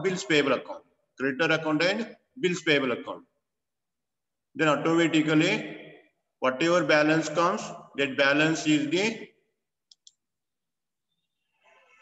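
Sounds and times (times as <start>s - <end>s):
man speaking: 0.0s - 3.4s, 4.5s - 9.4s.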